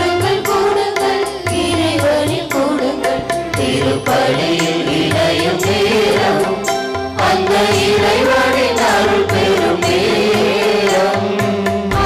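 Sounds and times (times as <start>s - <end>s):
held instrumental notes: 2.6s - 12.0s.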